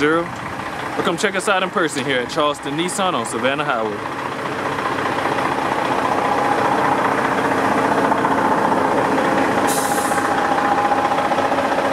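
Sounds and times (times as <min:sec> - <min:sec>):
pickup truck engine idling: 0:00.0 - 0:11.9.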